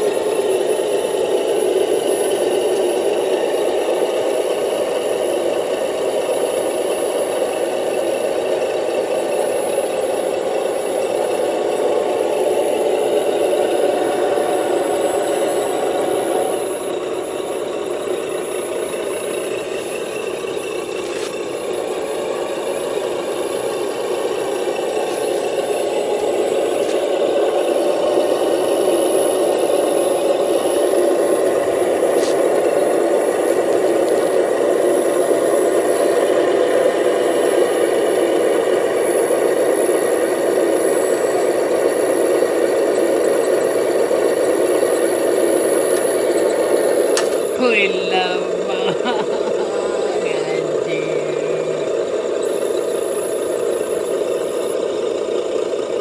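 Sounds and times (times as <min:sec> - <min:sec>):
toy loader engine drone: 0:00.0 - 0:56.0.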